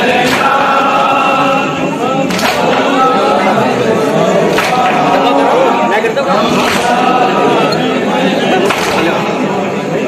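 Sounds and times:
men singing in chorus: 0:00.0 - 0:10.0
hand slapping chest: 0:04.5 - 0:04.9.

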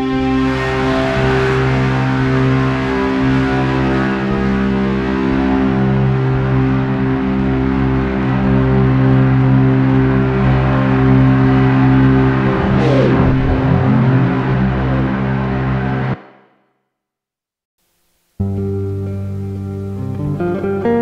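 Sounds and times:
sustained electric guitar drones: 0:00.0 - 0:16.2
sliding pitch sweep: 0:12.0 - 0:16.2.

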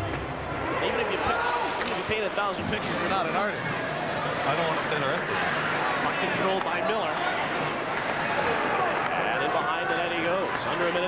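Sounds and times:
crowd chattering murmur: 0:00.0 - 0:11.0.

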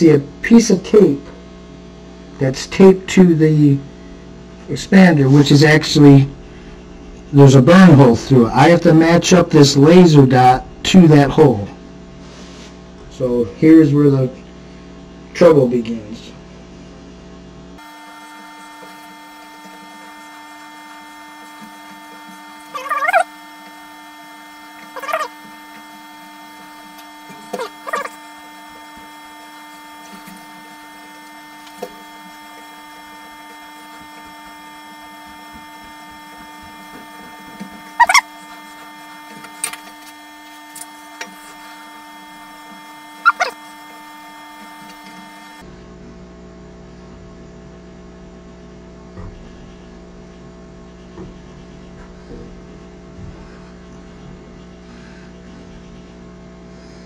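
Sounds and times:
laser cutter electrical hum: 0:00.0 - 0:57.0
short sharp squeaks: 0:21.5 - 0:23.4, 0:27.3 - 0:28.3, 0:37.9 - 0:38.6, 0:43.2 - 0:43.8.

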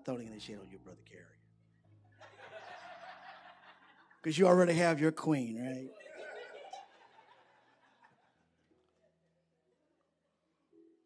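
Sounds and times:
crowd chuckling: 0:02.2 - 0:04.2, 0:05.9 - 0:08.6.

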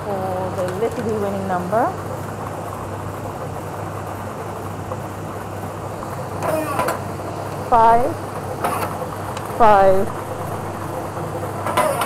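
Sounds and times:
machine low hum: 0:00.0 - 0:12.0.

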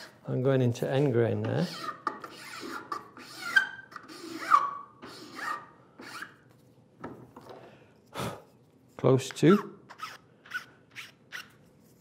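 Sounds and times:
metal file rasping on wood: 0:00.0 - 0:00.3, 0:00.9 - 0:06.4.

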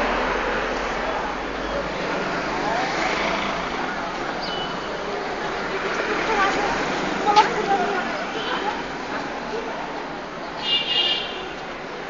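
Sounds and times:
faint voices: 0:00.0 - 0:10.7
traffic noise: 0:00.0 - 0:12.0.

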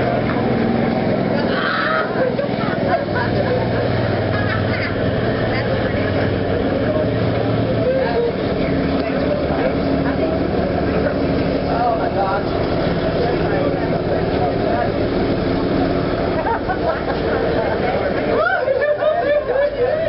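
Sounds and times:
faint voices chattering: 0:00.0 - 0:20.0
vehicle engine running: 0:00.0 - 0:20.0.

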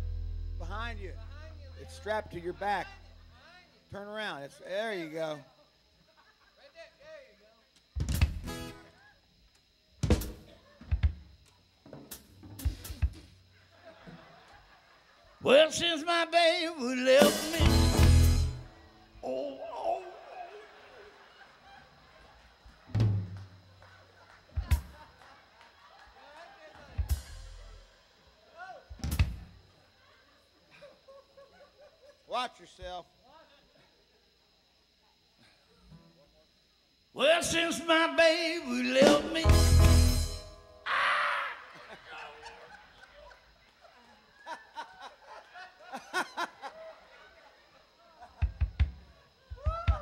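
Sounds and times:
bass drum kick with cymbal crash: 0:00.0 - 0:02.4, 0:17.2 - 0:18.7, 0:27.0 - 0:27.7, 0:29.0 - 0:29.5, 0:39.1 - 0:40.6.

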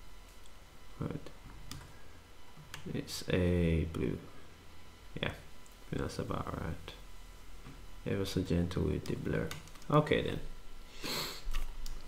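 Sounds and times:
computer mouse clicks: 0:09.0 - 0:10.0.

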